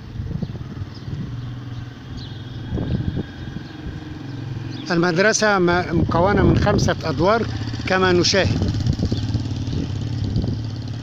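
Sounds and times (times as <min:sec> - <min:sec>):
street noise: 0:00.0 - 0:11.0
vehicle engine humming: 0:00.0 - 0:11.0.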